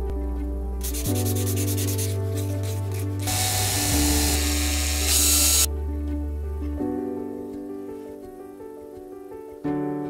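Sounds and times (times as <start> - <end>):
background music: 0.0 - 10.0
sandpaper rubbing on wood: 0.8 - 5.7.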